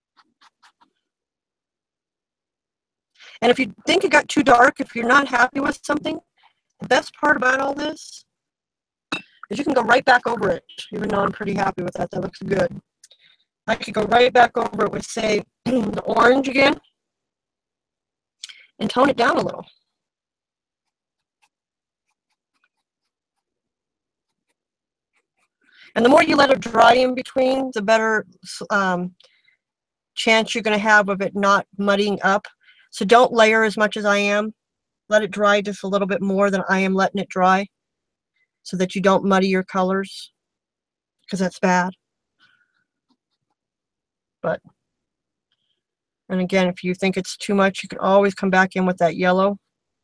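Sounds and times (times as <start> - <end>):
faint scratching strokes on fabric: 20.8 - 25.7.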